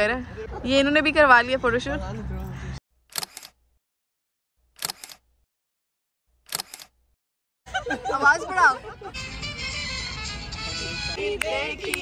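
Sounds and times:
camera shutter double click: 0:04.8 - 0:05.2, 0:06.4 - 0:07.0.

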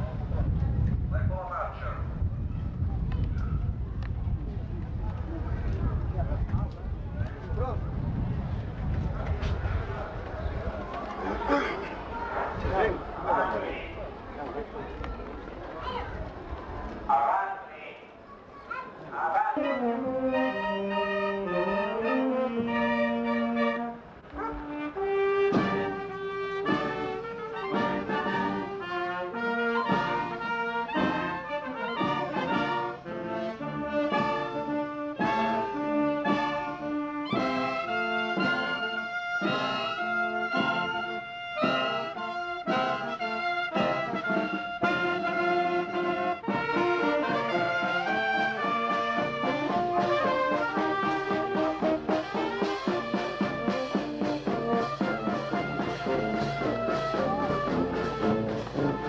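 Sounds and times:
marching wind band playing: 0:07.5 - 0:14.7, 0:19.4 - 0:59.0.

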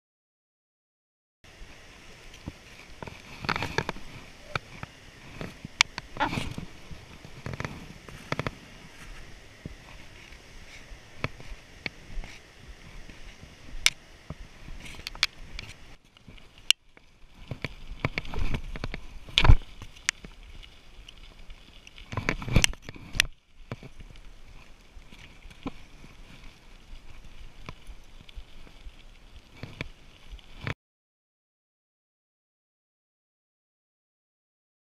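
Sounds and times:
bicycle tyres rolling on pavement: 0:01.5 - 0:30.8
footsteps on trail steps: 0:01.6 - 0:30.8
bicycle rattles and clicks: 0:02.0 - 0:30.8.

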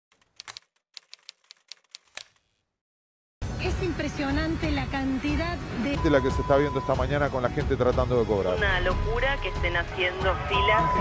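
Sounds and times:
typewriter keys clicking: 0:00.1 - 0:02.4.

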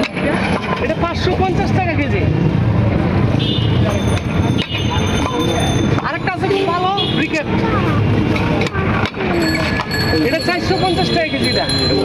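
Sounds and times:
people talking loudly: 0:00.0 - 0:12.0.

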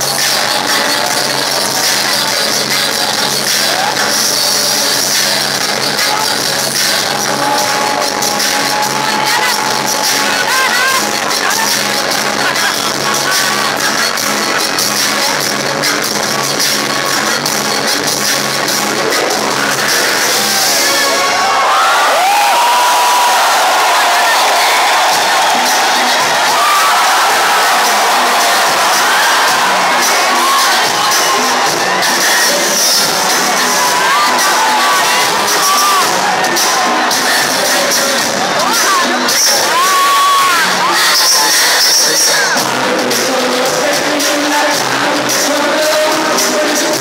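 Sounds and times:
crowd screaming and cheering: 0:00.0 - 0:47.0
live pop music with bass line: 0:00.0 - 0:47.0.

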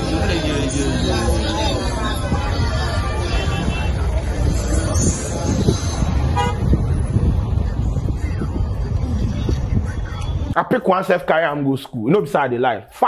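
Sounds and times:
road traffic rumble: 0:00.0 - 0:11.7
vehicle horn toot: 0:06.3 - 0:06.7.

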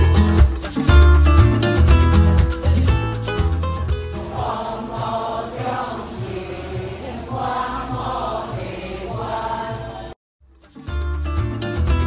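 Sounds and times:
bass-heavy background music: 0:00.0 - 0:04.4, 0:10.4 - 0:12.0
worshippers chanting together: 0:04.3 - 0:10.2.

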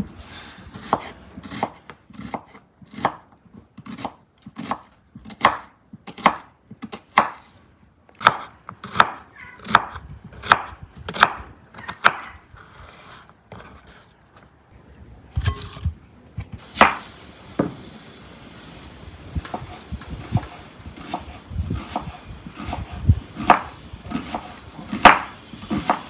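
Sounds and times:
knife slicing onion: 0:00.2 - 0:07.6, 0:08.2 - 0:14.1, 0:19.4 - 0:26.0.

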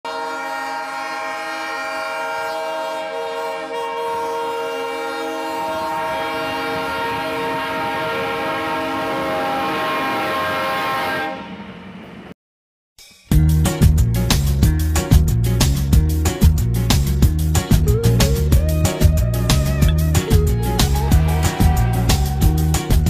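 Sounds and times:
locomotive air horn blast: 0:00.0 - 0:12.0.

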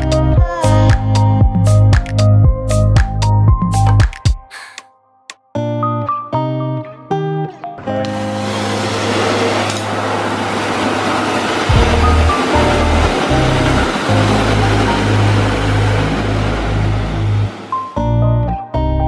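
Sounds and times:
background music: 0:00.0 - 0:09.4, 0:11.7 - 0:19.0
hose spraying water on metal: 0:08.1 - 0:17.8.

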